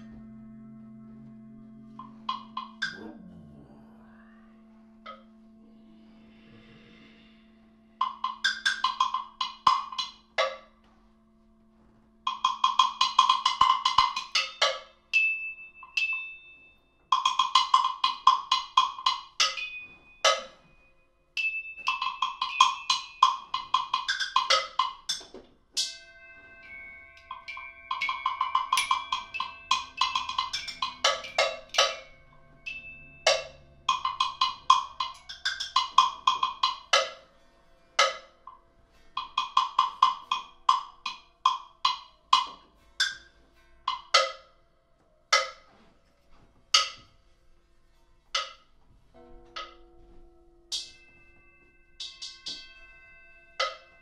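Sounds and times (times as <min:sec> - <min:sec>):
mallets striking metal bars: 0:02.0 - 0:03.5, 0:08.0 - 0:10.9, 0:12.3 - 0:54.0.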